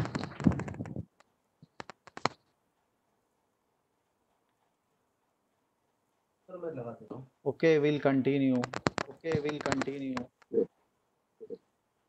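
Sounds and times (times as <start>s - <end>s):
computer keyboard typing: 8.5s - 10.4s.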